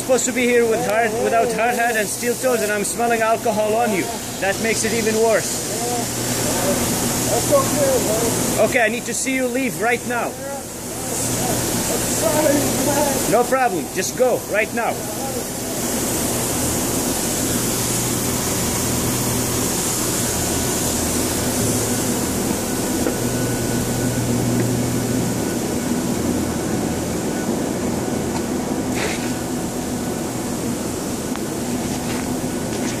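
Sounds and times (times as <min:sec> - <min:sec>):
machinery drone with hum and hiss: 0:00.0 - 0:33.0.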